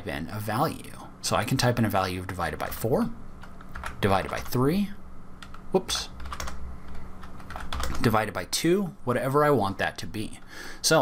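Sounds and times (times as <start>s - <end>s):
low steady hum: 0.0s - 11.0s
computer keyboard keystrokes: 3.4s - 4.5s, 5.4s - 5.6s, 6.2s - 8.1s.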